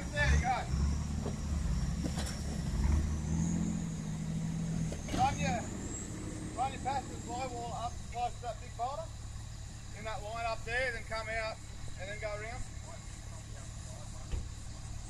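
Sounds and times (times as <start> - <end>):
car engine at low revs: 0.0 - 15.0.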